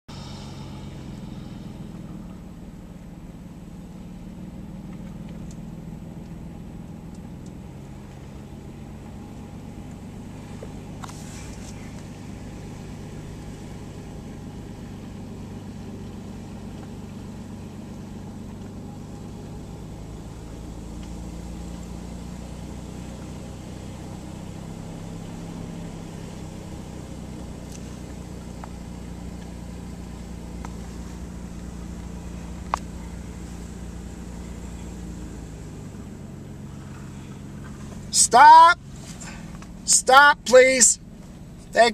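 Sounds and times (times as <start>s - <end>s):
car engine hum: 0.0s - 41.9s
road noise: 0.0s - 41.9s.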